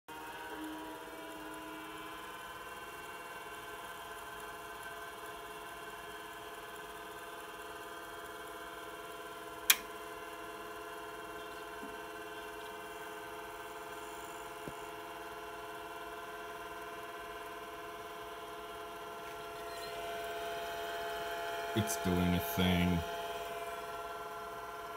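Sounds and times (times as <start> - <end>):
computer whirring hum: 0.1 - 24.9
sharp click: 9.7 - 9.9.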